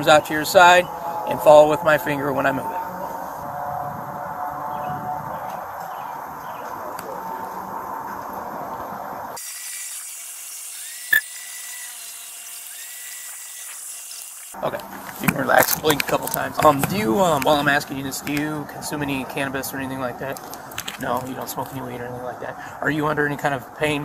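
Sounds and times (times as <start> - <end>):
voices: 0.0 - 9.4, 14.6 - 24.0.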